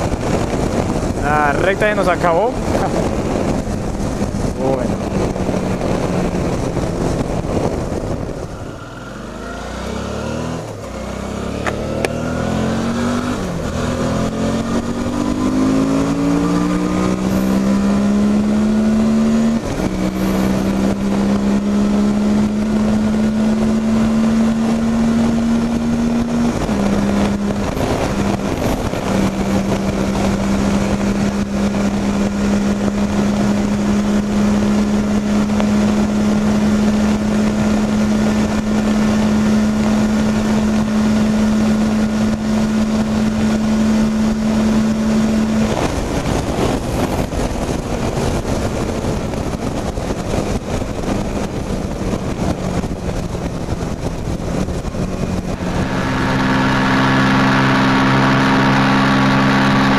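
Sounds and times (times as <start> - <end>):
motorcycle engine accelerating: 0.0 - 59.9
wind rushing: 0.0 - 59.9.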